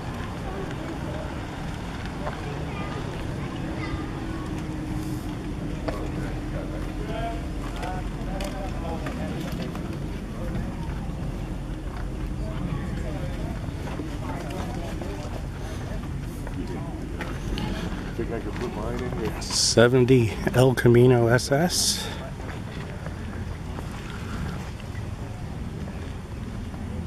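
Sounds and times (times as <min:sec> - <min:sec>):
faint voices talking: 0:00.0 - 0:27.0.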